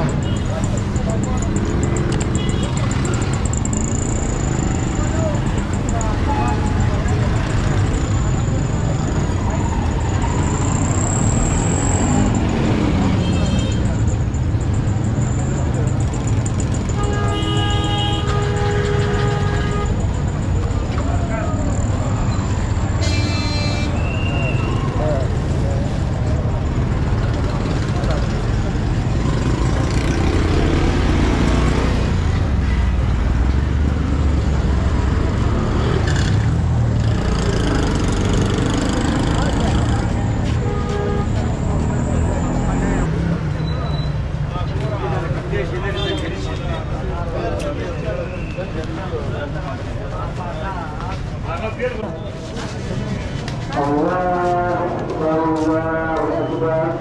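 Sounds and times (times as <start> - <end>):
chatter of passers-by: 0.0 - 57.0
motor traffic: 0.0 - 57.0
vehicle horns tooting: 2.1 - 3.4, 12.2 - 14.1, 16.7 - 20.3, 22.8 - 24.9, 39.9 - 42.6.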